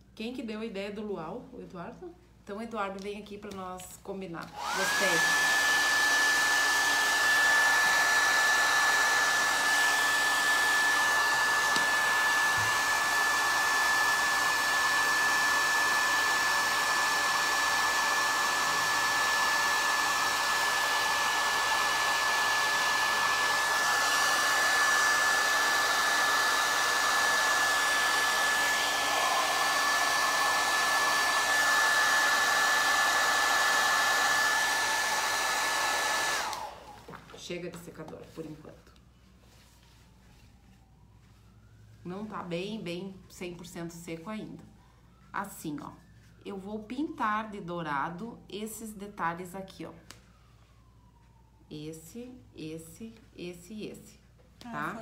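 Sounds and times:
hair dryer blowing: 0:04.4 - 0:38.8, 0:54.7 - 0:55.0.

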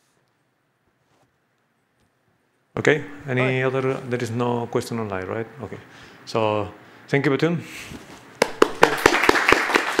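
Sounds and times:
audience clapping: 0:08.4 - 0:10.0.

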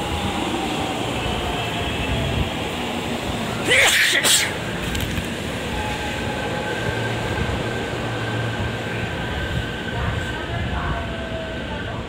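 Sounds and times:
electric train rumbling: 0:00.0 - 0:12.0.

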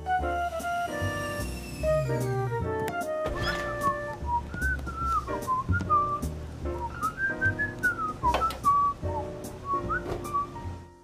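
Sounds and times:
person whistling a jaunty tune: 0:00.0 - 0:10.7
light background music with bass: 0:00.0 - 0:11.0.

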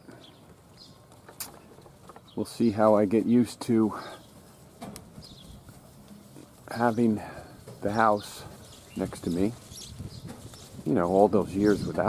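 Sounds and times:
high bird chirps: 0:08.0 - 0:10.8.

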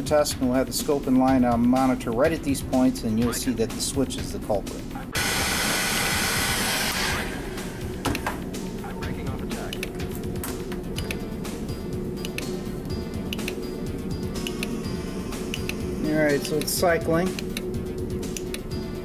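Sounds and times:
heat gun blowing: 0:05.2 - 0:08.3
low steady hum: 0:07.4 - 0:19.0.

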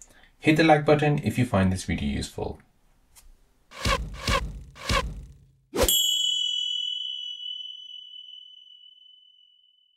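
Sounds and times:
sound effect hit: 0:03.7 - 0:05.9.

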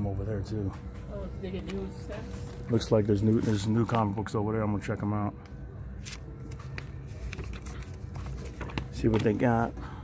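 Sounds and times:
low background hum: 0:00.0 - 0:10.0
comic books rustling in bags: 0:02.2 - 0:04.4, 0:06.0 - 0:10.0.

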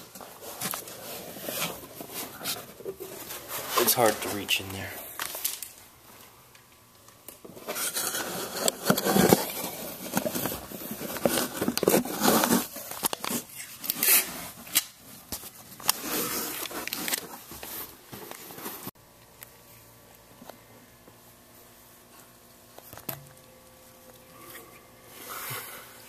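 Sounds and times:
cardboard boxes rustling and scraping: 0:00.0 - 0:04.7, 0:07.5 - 0:19.0.

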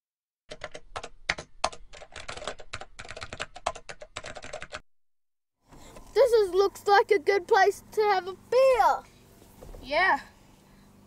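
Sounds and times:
computer keyboard typing: 0:00.5 - 0:04.8.

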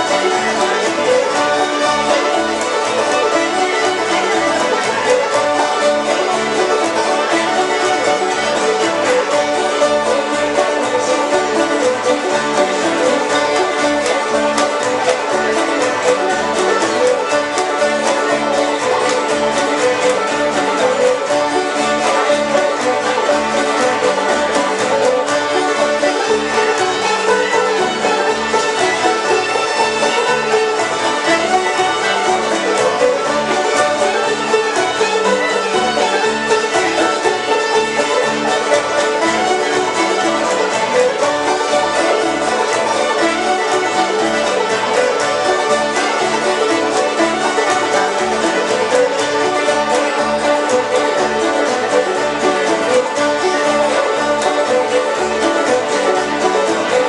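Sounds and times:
plucked upright bass: 0:00.0 - 0:57.0
string band playing: 0:00.0 - 0:57.0.

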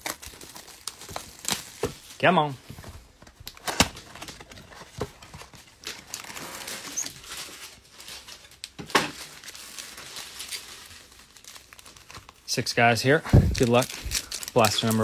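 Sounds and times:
cardboard and foil crinkling: 0:00.0 - 0:15.0.

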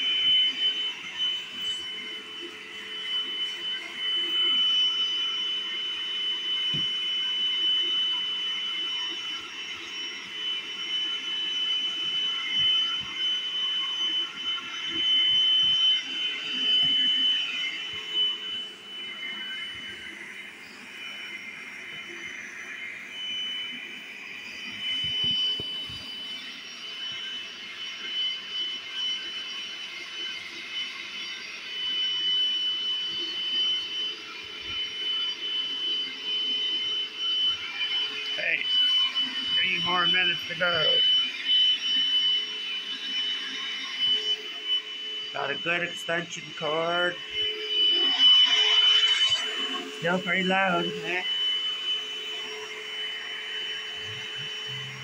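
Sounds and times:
carpet cleaner motor whining: 0:00.0 - 0:55.0.

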